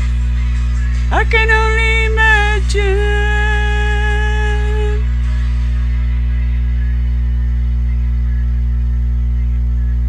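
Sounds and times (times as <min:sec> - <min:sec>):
sustained deep tone: 0:01.0 - 0:10.0.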